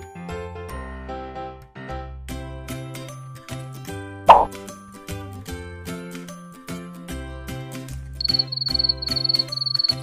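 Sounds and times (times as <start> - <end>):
light background music: 0.0 - 10.0
loud pop sound effect: 4.3 - 4.6.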